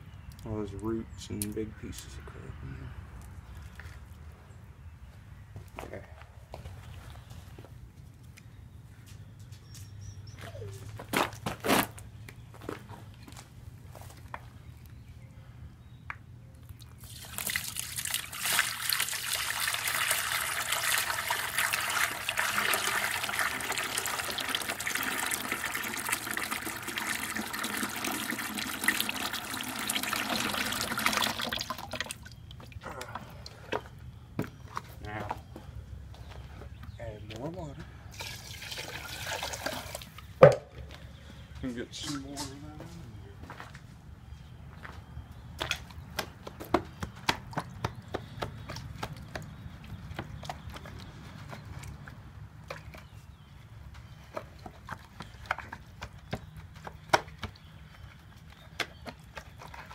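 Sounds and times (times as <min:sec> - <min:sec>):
bucket knocks: 0:40.4 - 0:40.7.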